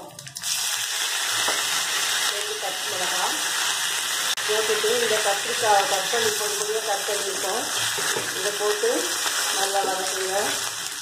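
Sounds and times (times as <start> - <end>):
vegetables sizzling in hot oil: 0.4 - 11.0.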